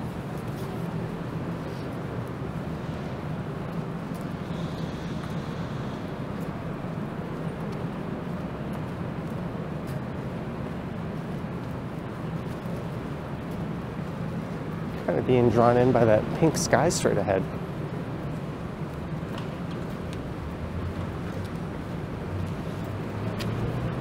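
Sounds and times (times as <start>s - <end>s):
road traffic noise: 0.0s - 24.0s.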